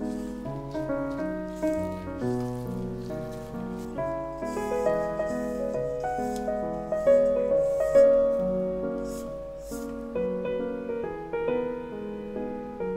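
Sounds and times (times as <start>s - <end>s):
gentle piano music: 0.0s - 12.9s.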